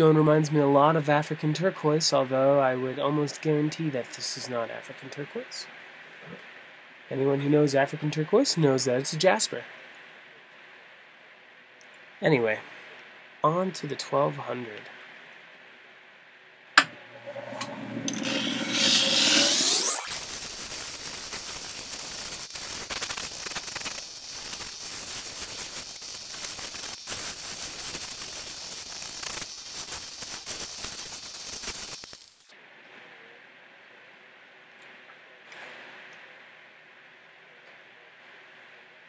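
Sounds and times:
grinding wheel whirring: 0:16.8 - 0:25.1
stone rasping on wheel: 0:17.0 - 0:20.2.

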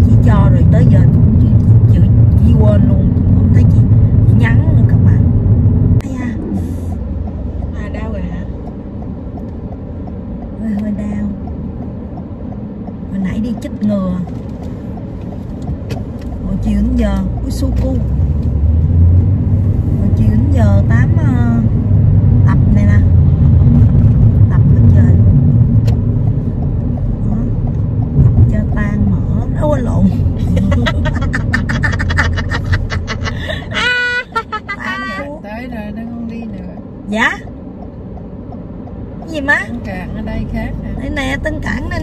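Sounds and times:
road and engine rumble in car: 0:00.0 - 0:42.0.

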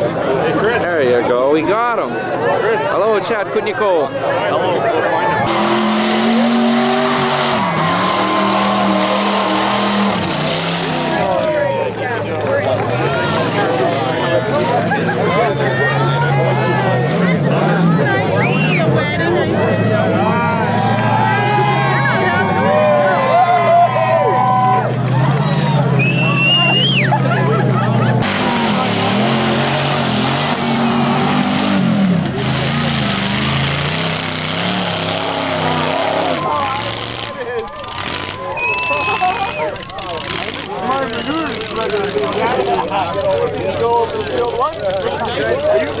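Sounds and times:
crowd voices: 0:00.0 - 0:46.0
vehicle engines revving: 0:00.0 - 0:46.0.

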